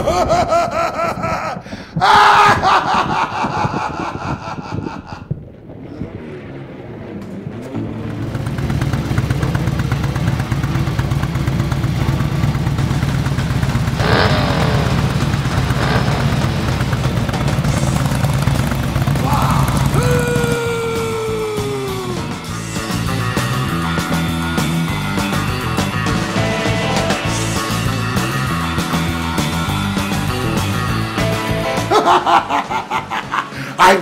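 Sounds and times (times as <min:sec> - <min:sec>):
sharp burst: 0:05.4 - 0:30.2
music soundtrack: 0:06.4 - 0:34.0
motorcycle engine running: 0:07.6 - 0:31.9.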